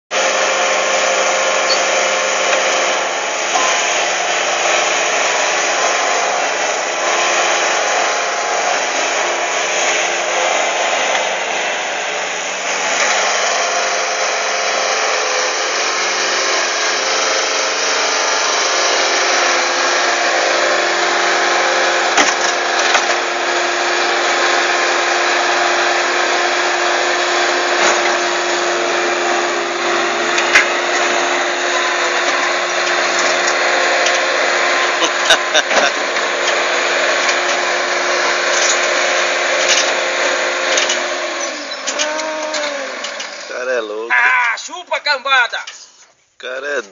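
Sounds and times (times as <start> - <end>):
diesel engine running at high revs: 0.1 - 44.3.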